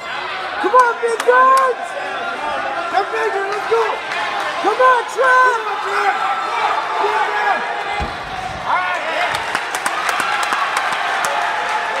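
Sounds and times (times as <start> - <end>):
spectators shouting and cheering: 0.0 - 12.0
dull thud on padded mat: 8.0 - 9.4
people clapping: 9.2 - 12.0.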